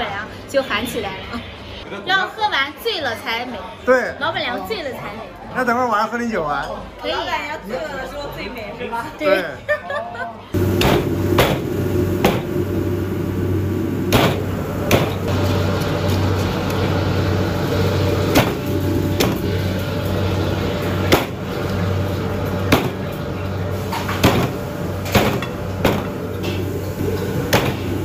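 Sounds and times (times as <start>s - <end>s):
steady low hum: 10.6s - 28.0s.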